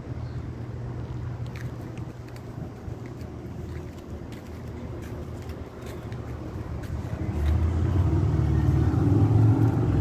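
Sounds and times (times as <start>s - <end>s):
vehicle engine rumble: 0.0s - 10.0s.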